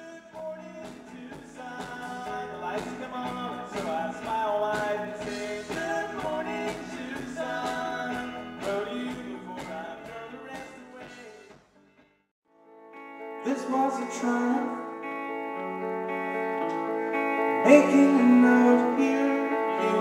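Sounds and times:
electric guitars: 0.0s - 12.0s, 12.7s - 20.0s
live rock band playing: 0.4s - 11.6s, 12.9s - 20.0s
drum kit: 0.4s - 11.8s.

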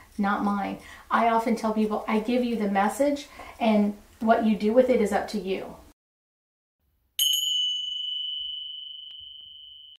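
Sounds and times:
high bell ding: 7.2s - 10.0s.

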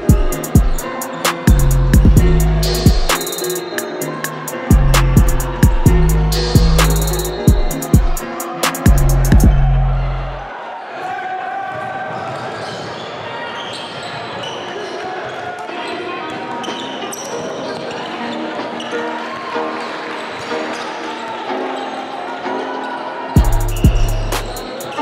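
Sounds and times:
voices of players and spectators: 0.0s - 25.0s.

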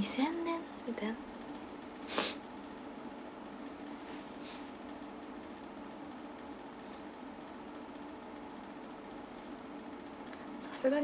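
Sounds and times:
faint hiss: 2.0s - 2.5s.

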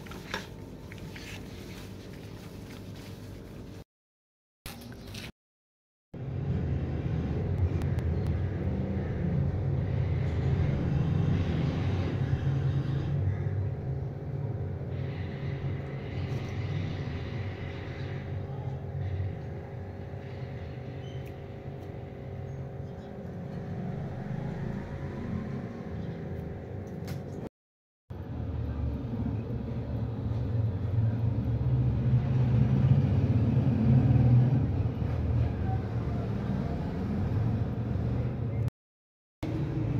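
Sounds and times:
low mechanical rumble with hum: 6.2s - 27.5s.

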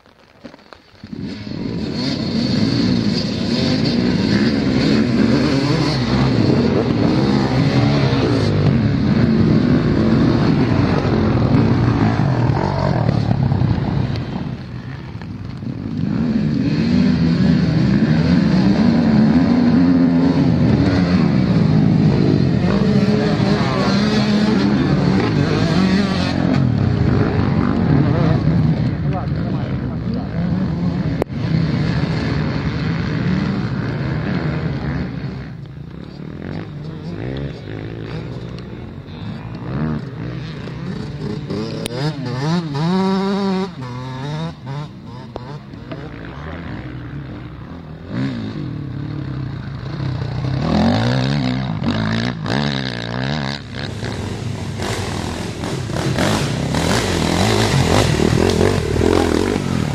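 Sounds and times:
dirt bike engines revving: 0.0s - 59.9s.

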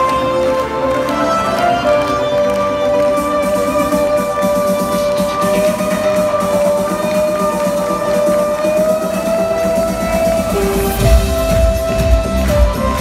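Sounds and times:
loud synth-pop music: 0.0s - 13.0s.

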